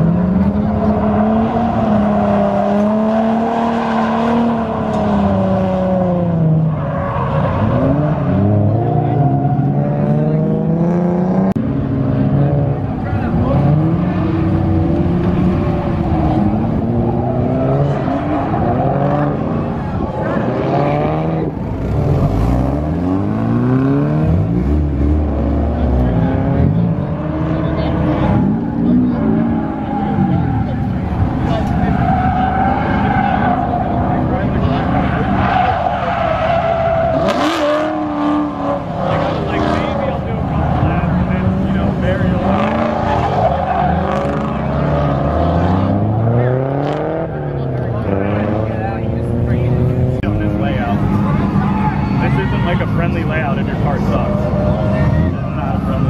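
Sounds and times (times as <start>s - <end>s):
tyres squealing on asphalt: 0.0s - 10.8s, 12.6s - 56.0s
car engine revving: 0.0s - 56.0s.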